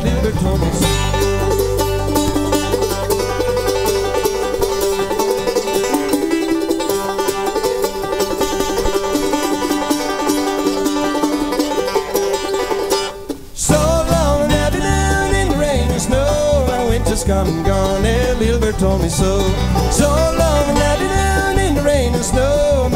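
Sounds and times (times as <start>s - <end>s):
bluegrass band playing: 0.0s - 22.9s
quickly picked banjo: 0.0s - 22.9s.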